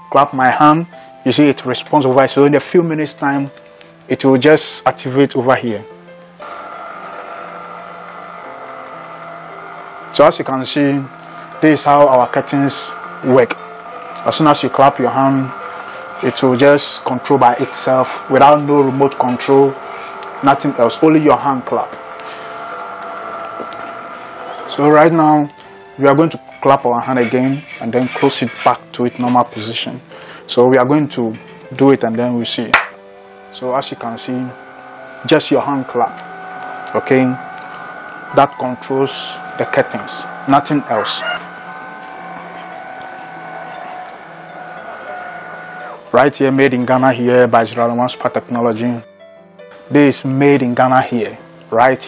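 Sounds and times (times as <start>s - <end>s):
curtain motor whine: 0.0s - 49.0s
machine hum with fixed tones: 5.8s - 29.3s, 31.3s - 47.0s.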